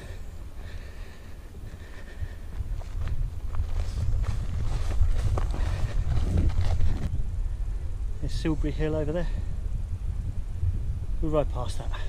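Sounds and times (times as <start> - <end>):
low wind rumble on microphone: 0.0 - 12.0
footsteps on grassy path: 1.6 - 7.1.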